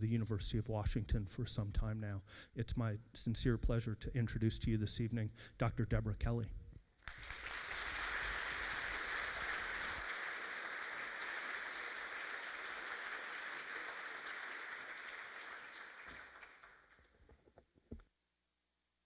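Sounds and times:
audience applauding: 7.0 - 17.2.

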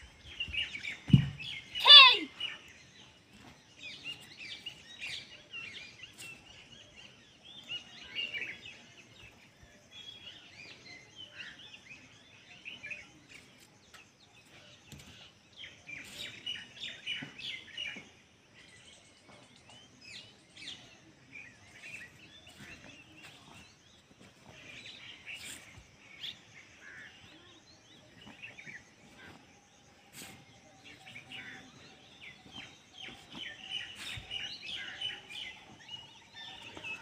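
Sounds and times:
small birds chirping: 0.0 - 37.0.

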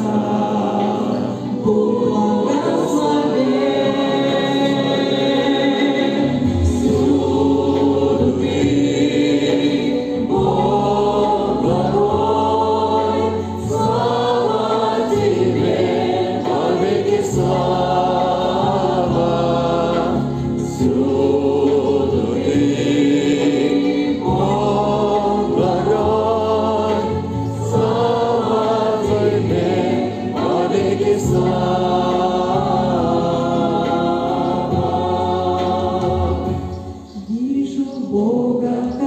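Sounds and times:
low accompaniment: 0.0 - 37.0
congregation singing a hymn: 0.0 - 39.0.

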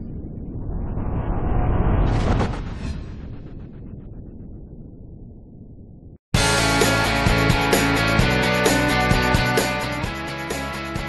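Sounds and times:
noisy rumbling whoosh: 0.0 - 6.2.

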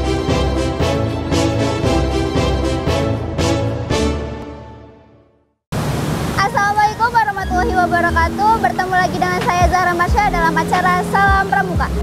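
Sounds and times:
theme tune: 0.0 - 5.6
rushing outdoor background noise: 5.8 - 12.0
woman speaking: 6.4 - 12.0.

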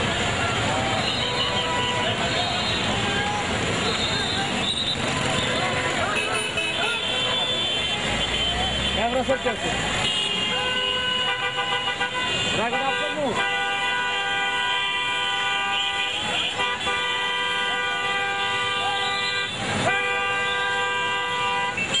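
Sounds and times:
street traffic: 0.0 - 22.0
vehicle horn blaring: 1.0 - 2.9, 10.0 - 22.0
voices shouting: 16.0 - 20.3.

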